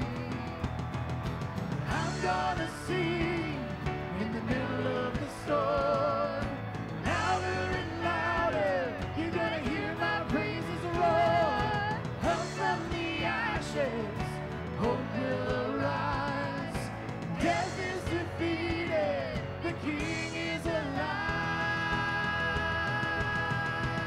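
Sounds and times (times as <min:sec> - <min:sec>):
band with keyboard guitar drums: 0:00.0 - 0:24.0
singers in harmony: 0:01.8 - 0:24.0.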